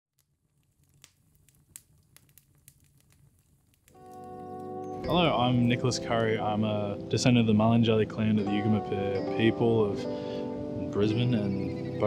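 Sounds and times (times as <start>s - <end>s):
faint clicks and crackles: 0.1s - 5.8s
music: 4.0s - 12.0s.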